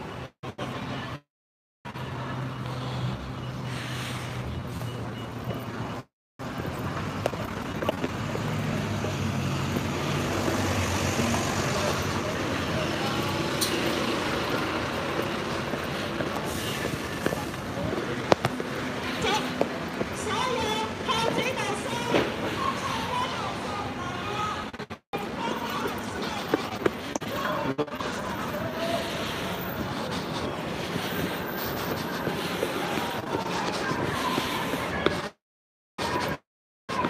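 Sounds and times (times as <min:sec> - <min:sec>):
road traffic engine hum: 0:00.0 - 0:35.4
people talking: 0:11.2 - 0:31.4, 0:32.0 - 0:35.3.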